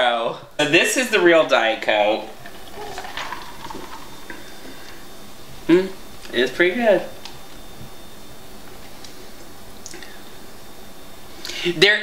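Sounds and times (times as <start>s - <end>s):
ice clicking in a glass: 2.5s - 4.4s.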